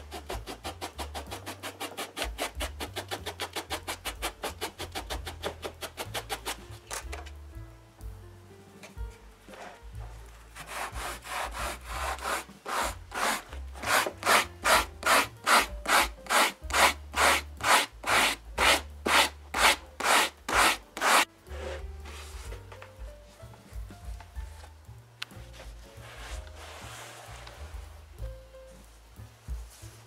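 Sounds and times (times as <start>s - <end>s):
sandpaper rubbing on foam: 0.0s - 6.8s, 10.5s - 22.5s, 25.6s - 28.0s.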